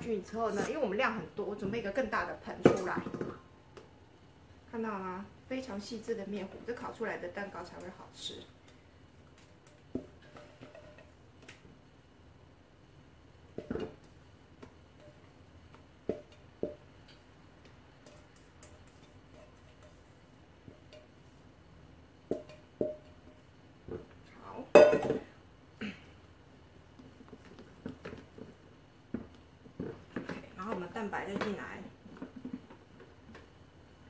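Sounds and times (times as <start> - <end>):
bowl clatter: 9.6 - 11.2, 24.7 - 25.3.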